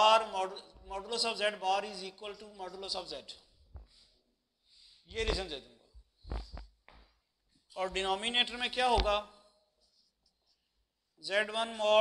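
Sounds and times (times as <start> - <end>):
spoken word: 5.1 - 5.6
marker pen scratching whiteboard: 5.2 - 5.5.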